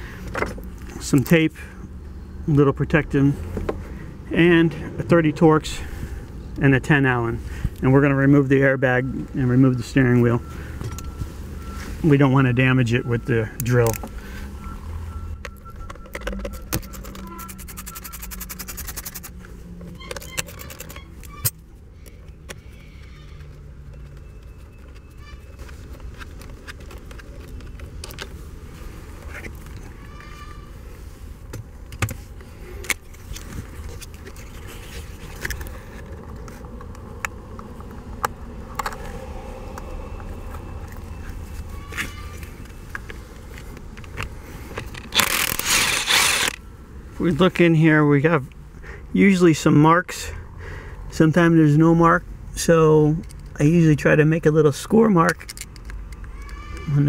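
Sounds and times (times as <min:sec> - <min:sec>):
tools clicking and scraping plastic: 0:15.4 - 0:28.4, 0:31.5 - 0:39.1, 0:41.9 - 0:46.6, 0:55.2 - 0:56.8
cordless drill running: 0:45.2 - 0:46.6.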